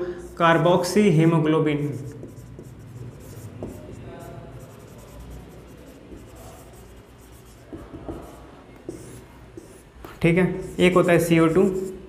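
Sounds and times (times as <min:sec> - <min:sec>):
marker pen writing on whiteboard: 0:00.2 - 0:12.0
pen tapping on board: 0:07.7 - 0:09.7.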